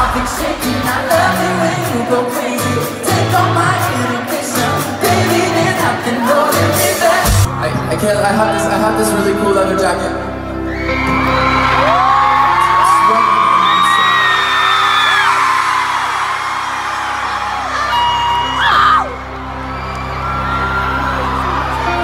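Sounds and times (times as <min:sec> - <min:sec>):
crowd screaming and whooping: 0:10.5 - 0:22.0.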